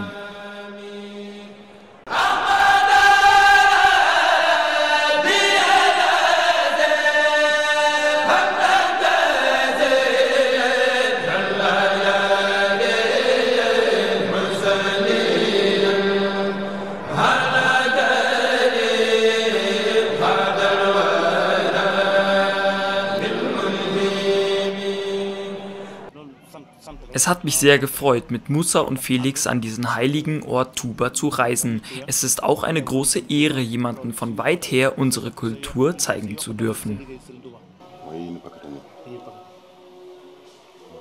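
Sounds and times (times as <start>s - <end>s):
religious chanting voice: 0.0s - 41.0s.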